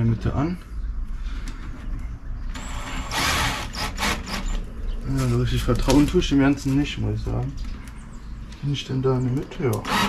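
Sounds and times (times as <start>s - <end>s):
drill driving screw into plywood: 2.6s - 4.6s.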